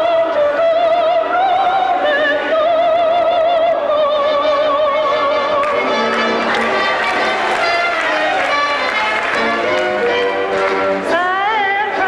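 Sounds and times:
audience singing and calling along: 0.0s - 12.0s
orchestral song soundtrack: 5.0s - 11.4s.

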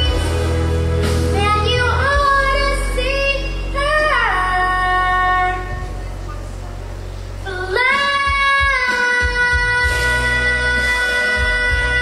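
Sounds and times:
backing music: 0.0s - 12.0s
girl singing country song: 1.3s - 6.0s, 7.4s - 12.0s.

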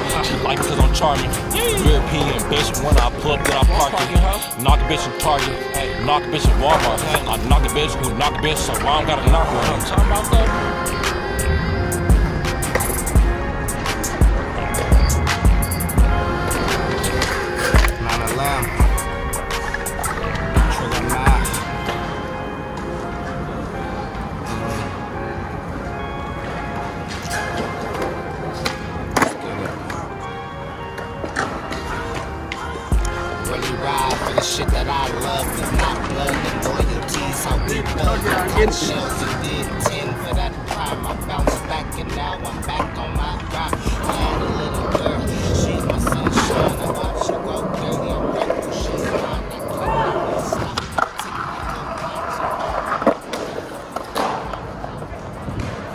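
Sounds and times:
hip-hop beat: 0.0s - 23.0s, 31.7s - 54.3s
skateboard wheels rolling on concrete: 0.0s - 55.9s
skateboard clacks: 6.7s - 22.1s, 31.2s - 55.9s.

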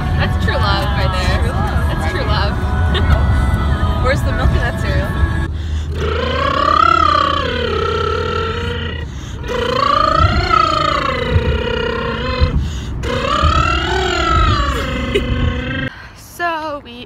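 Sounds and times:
car rumble on road: 0.0s - 16.0s
person singing vocal warm-up: 0.4s - 15.9s
breaths: 5.5s - 6.0s, 9.0s - 9.5s, 12.6s - 13.0s, 15.9s - 16.3s.

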